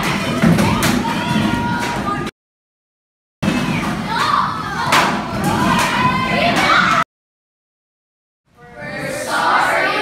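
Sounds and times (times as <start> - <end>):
children shouting and cheering: 0.0 - 2.3, 3.6 - 7.0, 8.6 - 10.0.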